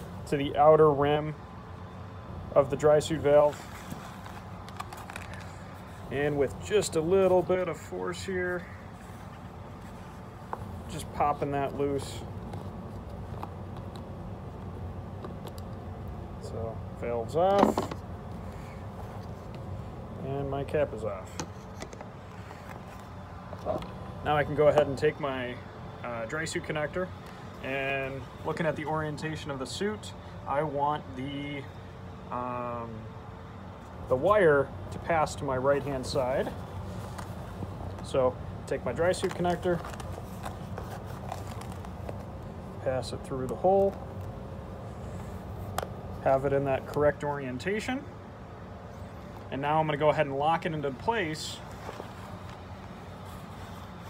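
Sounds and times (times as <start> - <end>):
steady low hum: 0.0 - 54.0
faint clicks and rustles: 3.3 - 16.2, 21.1 - 25.0, 36.0 - 47.1, 51.0 - 54.0.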